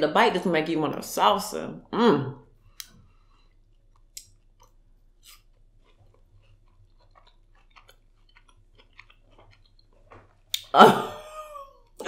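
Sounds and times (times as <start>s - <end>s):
person crunching and chewing: 3.1s - 10.8s.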